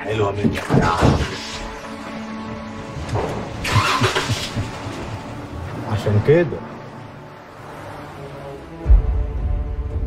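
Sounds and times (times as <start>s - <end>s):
car engines pulling away: 3.5s - 5.3s.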